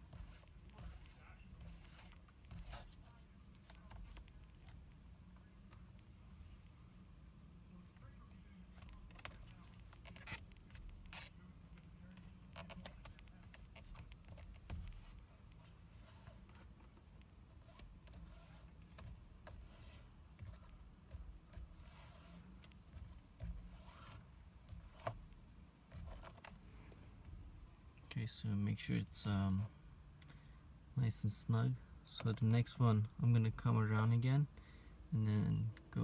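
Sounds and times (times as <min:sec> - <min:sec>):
needle and thread through leather: 0:00.0 - 0:05.0, 0:08.0 - 0:26.6
low steady hum: 0:00.0 - 0:36.0.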